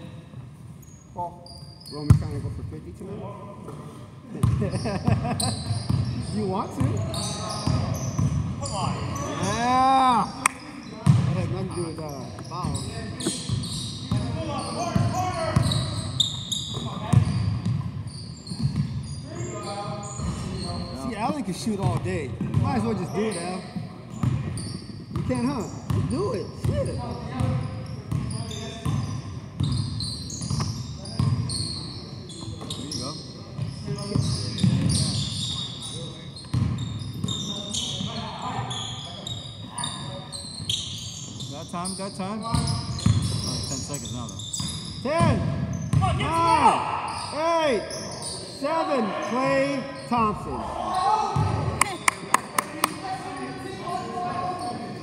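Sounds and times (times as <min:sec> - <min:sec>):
sneakers squeaking: 0:00.7 - 0:02.6, 0:03.6 - 0:55.0.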